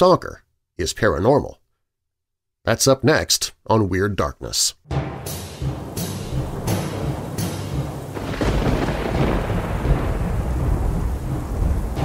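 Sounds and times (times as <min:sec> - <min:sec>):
sharp thunder cracks: 0:05.0 - 0:12.0
low rolling thunder rumble: 0:05.7 - 0:12.0
steady rain: 0:06.9 - 0:12.0.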